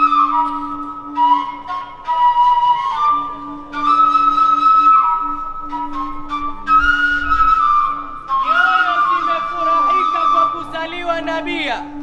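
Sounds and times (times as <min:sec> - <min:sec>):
end-blown flute playing held notes: 0:00.0 - 0:12.0.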